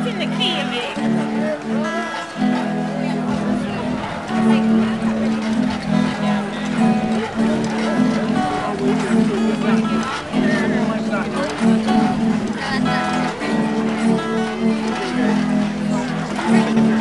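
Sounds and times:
acoustic guitar strummed: 0:00.0 - 0:17.0.

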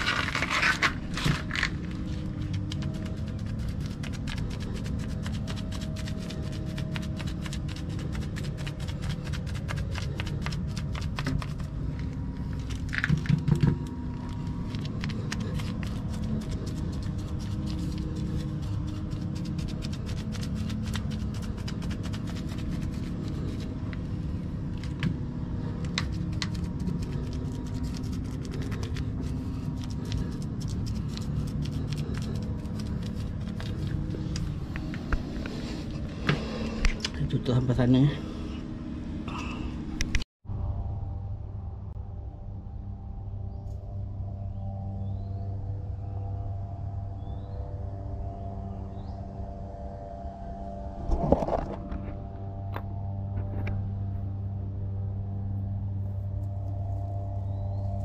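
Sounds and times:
paint brush scraping on concrete: 0:00.0 - 0:13.0, 0:14.4 - 0:24.4
low steady hum: 0:00.0 - 0:58.0
faint background music: 0:40.4 - 0:58.0.

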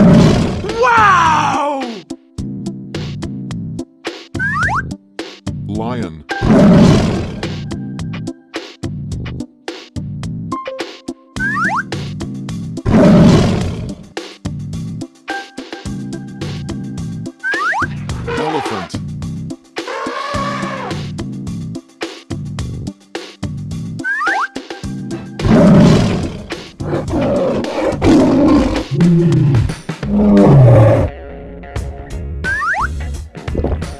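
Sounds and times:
animal roar sound effect: 0:00.0 - 0:01.9, 0:06.4 - 0:07.5, 0:12.9 - 0:14.0, 0:18.2 - 0:19.0, 0:19.9 - 0:21.0, 0:25.4 - 0:31.2
bouncy children's music: 0:00.7 - 0:06.4, 0:07.4 - 0:12.8, 0:14.2 - 0:18.2, 0:18.9 - 0:25.4, 0:31.2 - 0:33.9
rising cartoon whistle effect: 0:17.4 - 0:17.9, 0:24.0 - 0:24.5, 0:32.5 - 0:32.9.

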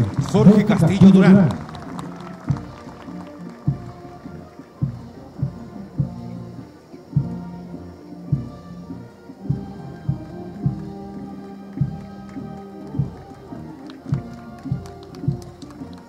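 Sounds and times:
military band playing a march: 0:00.0 - 0:16.0.

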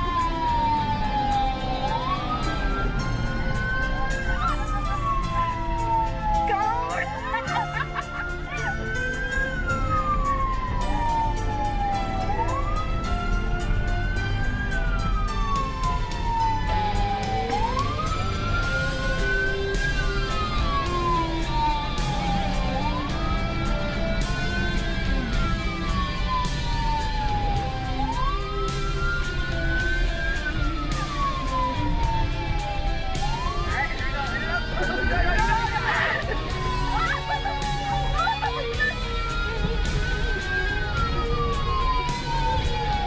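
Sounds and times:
police siren wailing: 0:00.0 - 0:43.0.

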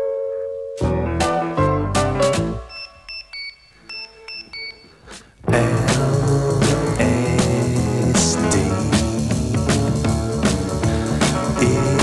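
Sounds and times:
pop song: 0:05.4 - 0:12.0.

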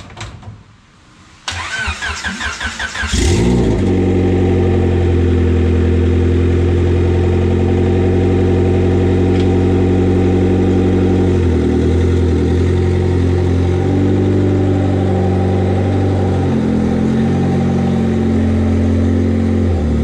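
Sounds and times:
engine starter cranking: 0:01.5 - 0:03.2
car engine idling: 0:03.1 - 0:20.0.

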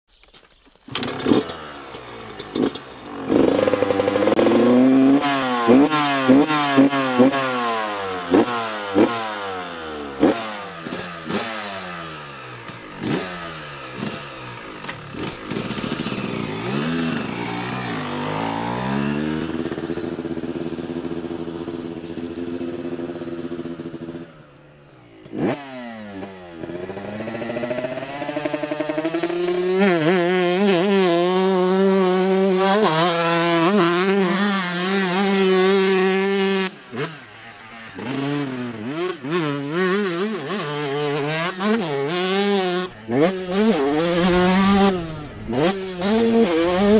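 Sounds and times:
dirt bike engine revving: 0:00.9 - 0:46.9.

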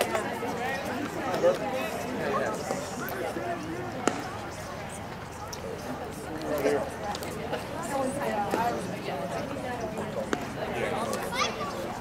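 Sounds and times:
people talking faintly: 0:00.0 - 0:12.0.

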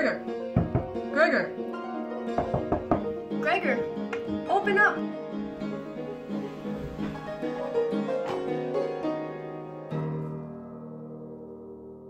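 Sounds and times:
low piano chord ringing: 0:05.1 - 0:12.0.

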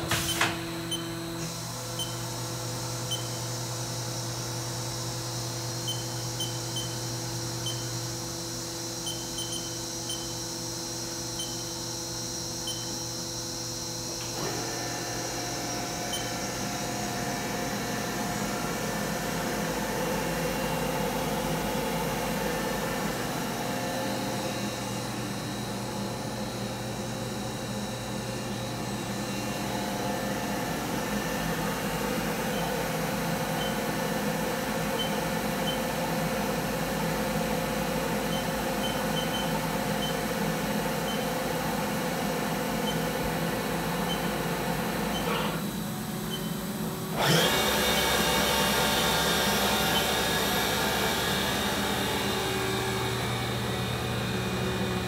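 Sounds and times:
milling machine humming: 0:00.0 - 0:55.0.

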